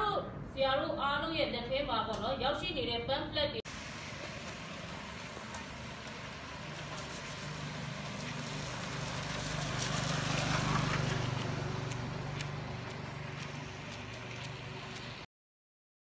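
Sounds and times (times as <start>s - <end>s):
car tyres swishing on wet road: 3.7s - 15.3s
rain hissing: 3.7s - 15.3s.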